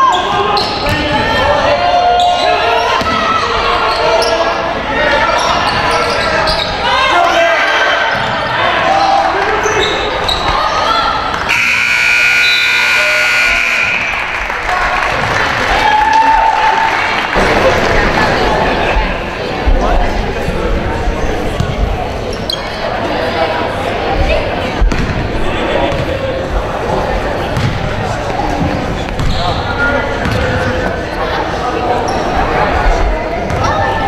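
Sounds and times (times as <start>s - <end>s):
scoreboard buzzer: 11.5s - 14.4s.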